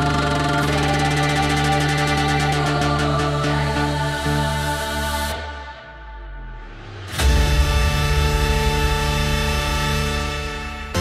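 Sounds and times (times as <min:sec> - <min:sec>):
heavy bass: 0:00.0 - 0:11.0
trance music with synth chord: 0:00.0 - 0:11.0.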